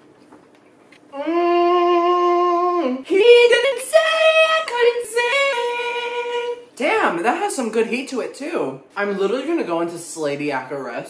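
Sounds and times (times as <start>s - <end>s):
man singing high held notes: 1.1s - 3.4s.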